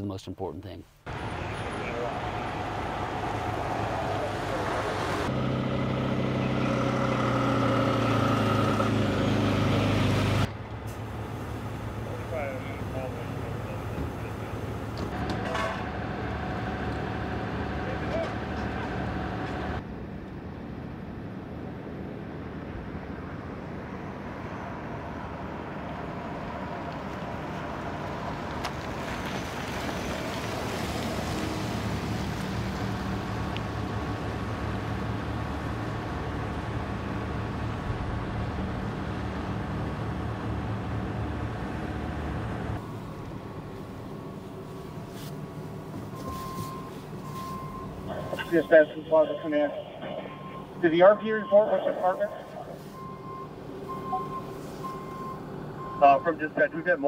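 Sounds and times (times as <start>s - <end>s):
pickup truck driving past: 1.1s - 19.8s, 23.8s - 44.4s
fire truck idling: 10.5s - 19.8s, 33.4s - 57.0s.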